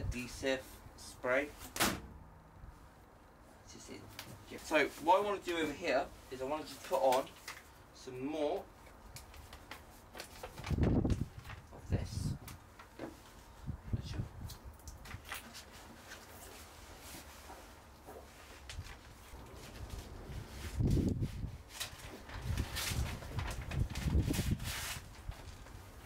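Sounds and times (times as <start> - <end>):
foil insulation rustling and crinkling: 9.0 - 13.7, 15.0 - 26.0.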